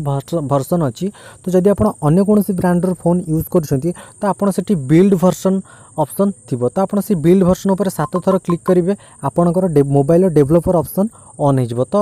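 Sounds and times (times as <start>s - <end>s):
faint high-pitched whine: 0.0s - 12.0s
man speaking: 0.0s - 12.0s.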